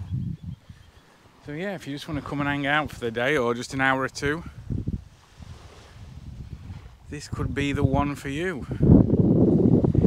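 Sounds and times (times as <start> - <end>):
wind buffeting microphone: 0.0 - 1.4, 2.0 - 10.0
gentle surf hiss: 0.6 - 7.3.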